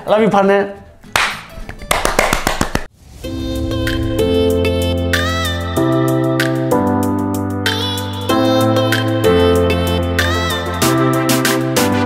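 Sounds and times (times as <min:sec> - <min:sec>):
hands slapping in a high-five: 0:01.1 - 0:02.9
sharp hand claps: 0:01.1 - 0:02.9.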